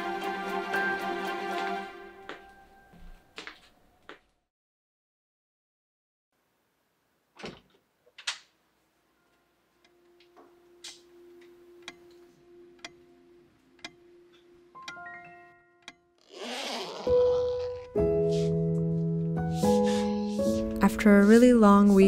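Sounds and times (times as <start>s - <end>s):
music with held notes: 0.0s - 3.1s.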